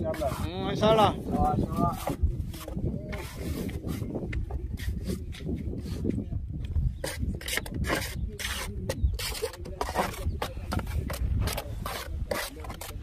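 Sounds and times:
trowel scraping wet mortar: 0:00.0 - 0:06.1, 0:07.0 - 0:13.0.

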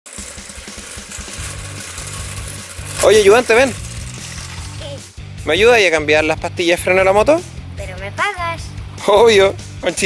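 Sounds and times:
scooter wheels rolling on asphalt: 0:00.0 - 0:05.2
music with bass: 0:00.1 - 0:10.0.

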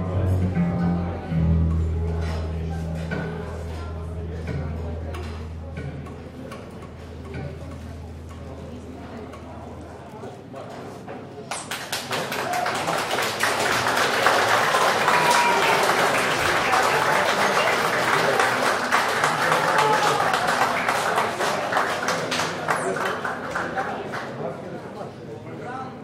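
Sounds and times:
crowd voices: 0:00.0 - 0:26.0
audience applause: 0:11.6 - 0:24.6.

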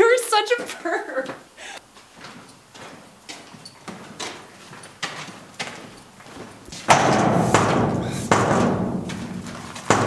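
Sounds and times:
heavy door slamming: 0:06.9 - 0:10.0
heavy thuds against door: 0:06.9 - 0:10.0.

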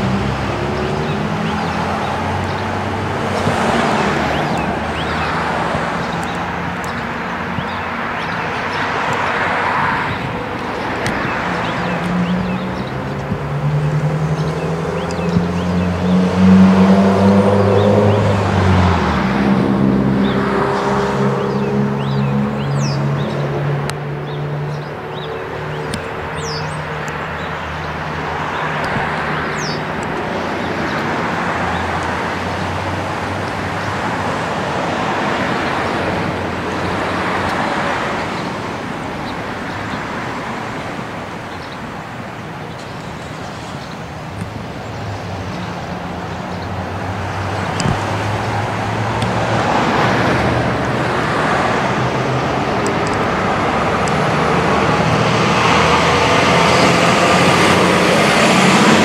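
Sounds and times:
road traffic passing: 0:00.0 - 0:59.0.

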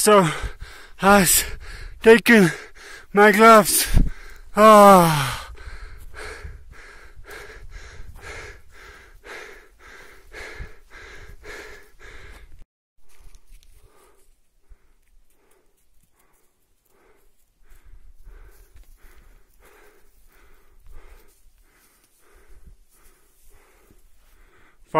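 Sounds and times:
rapid panting breaths: 0:00.0 - 0:12.6, 0:13.7 - 0:24.9.

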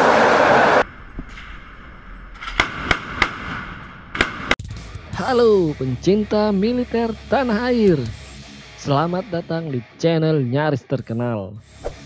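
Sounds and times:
gun shots: 0:02.4 - 0:04.6.

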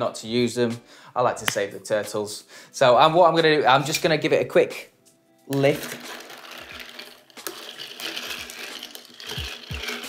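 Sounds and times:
bar spoon stirring ice: 0:05.6 - 0:10.0
ice clinking against glass: 0:05.8 - 0:10.0.

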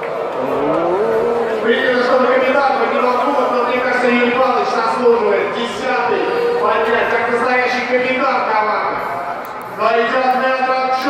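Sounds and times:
voice holding long rising note: 0:00.4 - 0:02.0.

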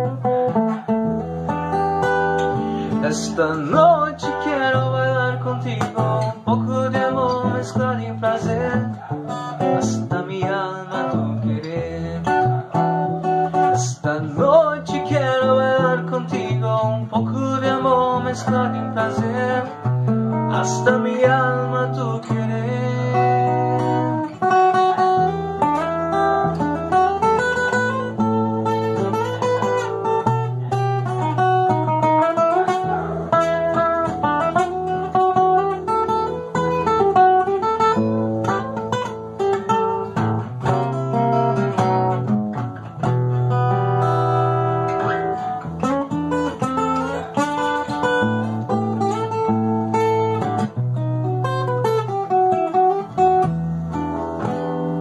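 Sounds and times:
acoustic guitar melody: 0:00.0 - 0:55.0.

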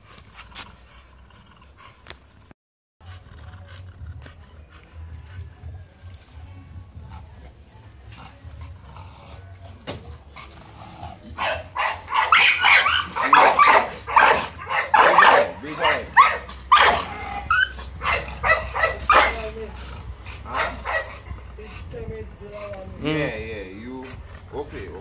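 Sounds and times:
dog barking loudly: 0:11.3 - 0:19.7, 0:20.3 - 0:21.5.

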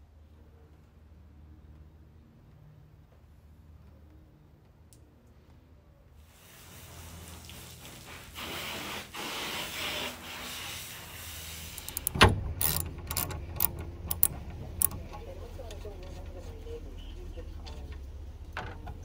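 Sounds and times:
hose spraying water: 0:06.2 - 0:12.2
metal clicks and knocks: 0:11.8 - 0:16.2.

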